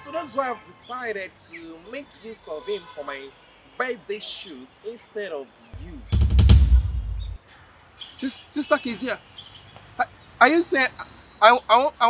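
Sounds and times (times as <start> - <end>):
deep bass boom: 5.8 - 7.4
quick run of drum hits: 6.0 - 7.4.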